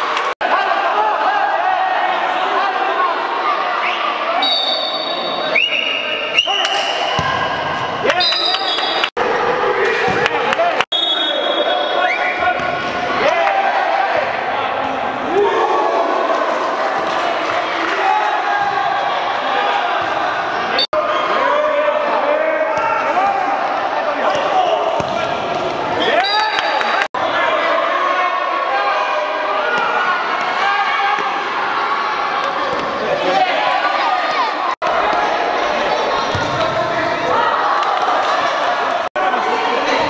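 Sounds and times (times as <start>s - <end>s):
people shouting in indoor hall: 0.0s - 25.3s, 25.9s - 40.0s.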